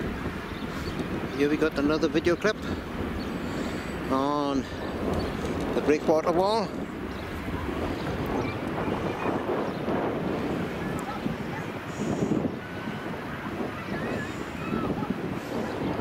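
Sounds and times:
distant surf: 0:00.0 - 0:16.0
wind buffeting microphone: 0:00.0 - 0:16.0
faint far-off voices: 0:06.6 - 0:16.0.

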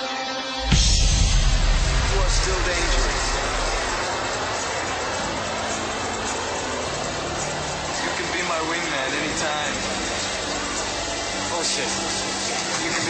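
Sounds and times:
jet fighter engine roar: 0:00.6 - 0:13.0
faint radio voices: 0:02.0 - 0:13.0.

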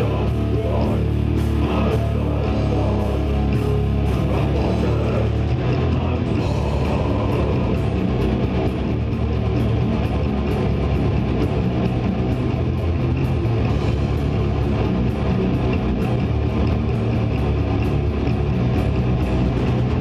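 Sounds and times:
death metal band playing: 0:00.0 - 0:20.0.

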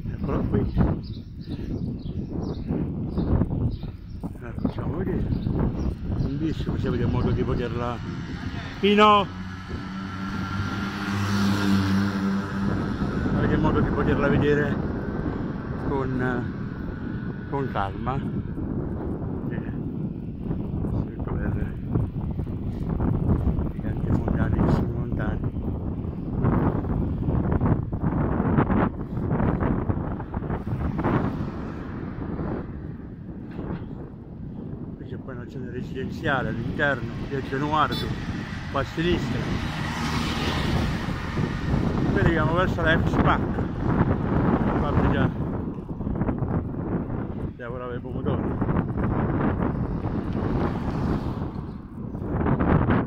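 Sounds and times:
road noise: 0:00.0 - 0:53.0
wind buffeting microphone: 0:00.0 - 0:53.0.

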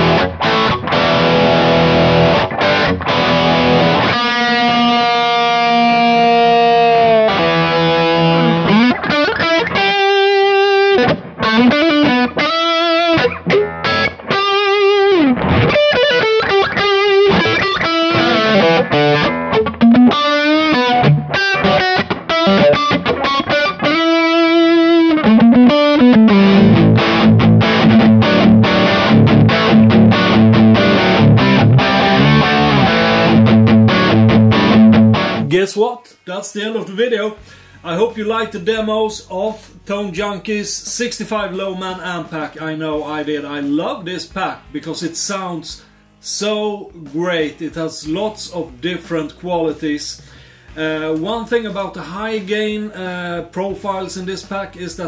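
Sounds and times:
overdriven electric guitar: 0:00.0 - 0:35.5.

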